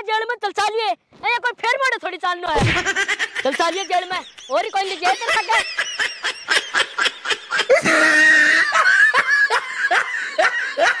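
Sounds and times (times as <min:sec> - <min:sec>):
hearty laughter: 0:02.7 - 0:11.0.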